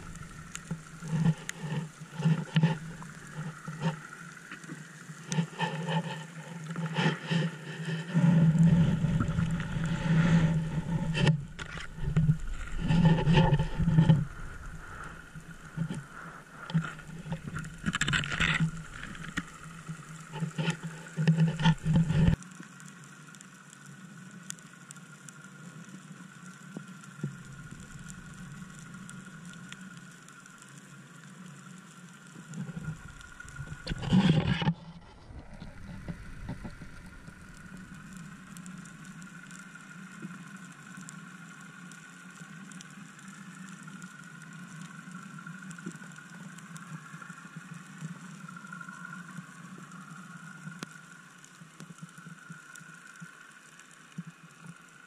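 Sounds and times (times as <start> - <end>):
rushing water and splashing: 0.0 - 23.2
underwater low hum and hiss: 0.0 - 55.0.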